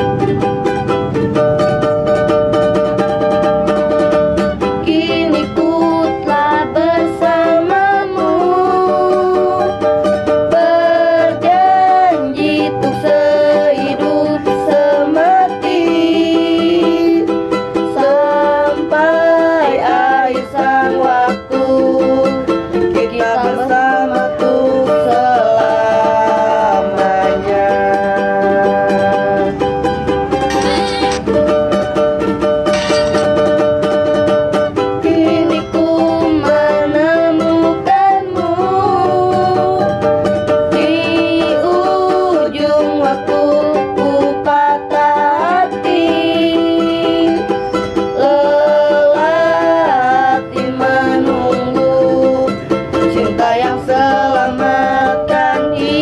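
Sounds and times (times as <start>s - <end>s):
ukulele strumming: 0.0s - 56.0s
young woman singing: 4.8s - 29.6s, 35.0s - 40.0s, 40.6s - 56.0s
young man singing: 18.0s - 29.5s.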